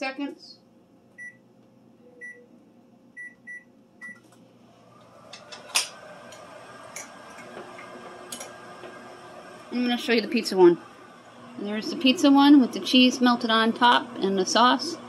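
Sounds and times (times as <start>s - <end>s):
microwave humming: 0.0s - 15.0s
microwave keypad beeping: 1.2s - 1.4s, 2.2s - 2.5s, 3.2s - 4.2s.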